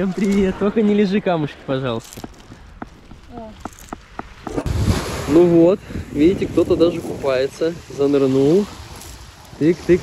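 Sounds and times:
surf rushing on shingle: 2.2s - 10.0s
wind rumble on microphone: 3.0s - 10.0s.

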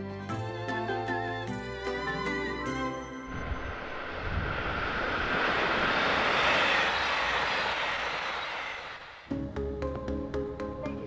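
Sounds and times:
passenger train passing: 0.4s - 10.7s.

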